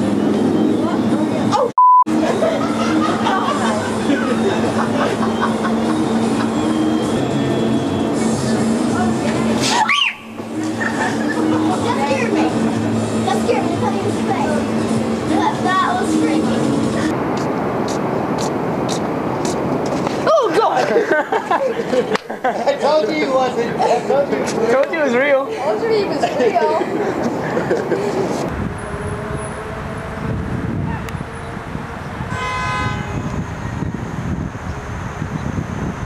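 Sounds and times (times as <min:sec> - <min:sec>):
street traffic rumbling: 0:00.0 - 0:36.0
vehicle horn toot: 0:32.3 - 0:33.6.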